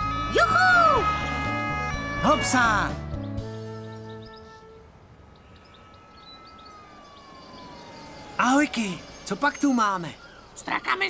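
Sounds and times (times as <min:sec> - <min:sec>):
faint siren-like tone: 0:05.4 - 0:10.6
faint high chirps: 0:05.4 - 0:11.0.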